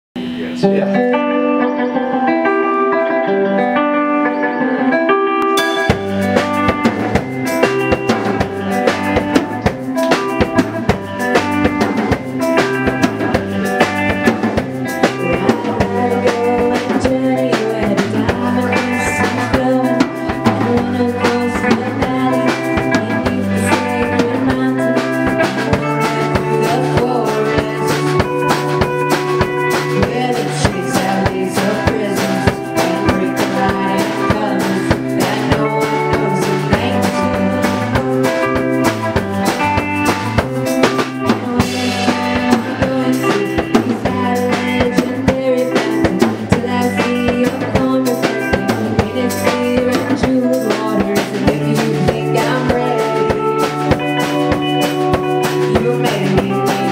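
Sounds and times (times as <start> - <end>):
live rock band playing: 0.2 - 56.9
steady drum beat: 5.5 - 56.9.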